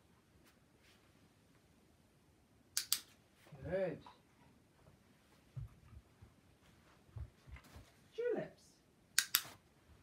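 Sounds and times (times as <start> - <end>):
sharp clicks: 2.7 - 3.1, 9.2 - 9.5
person speaking a word: 3.5 - 4.2.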